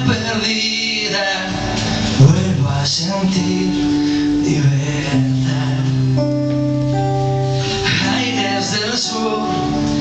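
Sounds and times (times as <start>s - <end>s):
acoustic guitar strumming: 0.0s - 10.0s
person singing: 0.0s - 10.0s.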